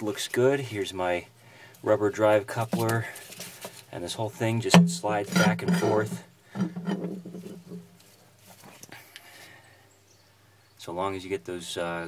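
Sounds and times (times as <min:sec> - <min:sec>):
drive shaft knocking and scraping: 0:04.4 - 0:08.0.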